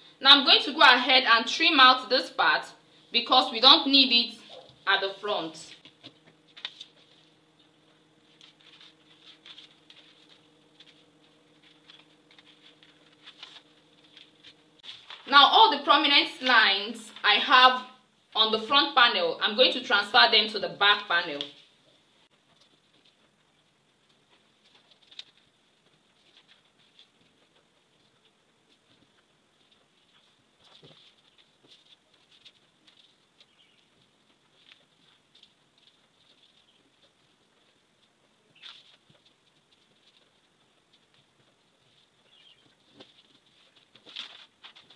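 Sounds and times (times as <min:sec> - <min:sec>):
scratchy paper sounds: 0:05.6 - 0:07.4, 0:08.2 - 0:15.4, 0:24.4 - 0:37.3, 0:41.8 - 0:44.9.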